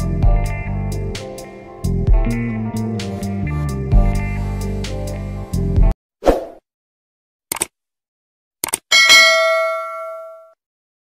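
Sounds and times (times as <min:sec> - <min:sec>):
clicks: 0:08.6 - 0:08.8
notification bell ding: 0:08.9 - 0:10.6.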